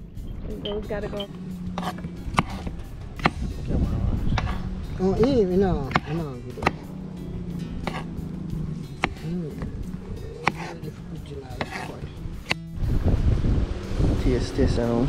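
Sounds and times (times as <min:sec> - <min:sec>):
rumbling noise: 0:00.0 - 0:15.0
knife chopping on wooden board: 0:01.2 - 0:03.6, 0:04.2 - 0:12.6.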